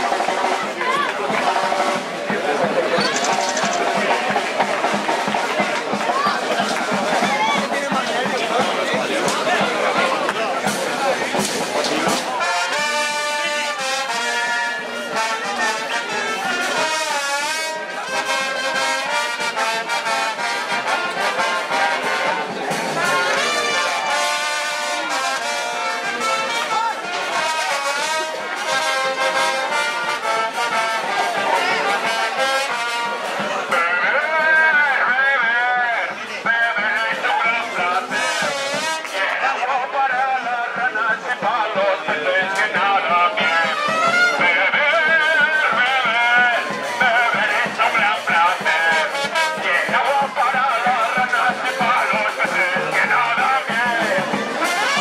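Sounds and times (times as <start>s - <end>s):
brass band music: 0.0s - 55.0s
crowd voices and shouts: 0.0s - 55.0s.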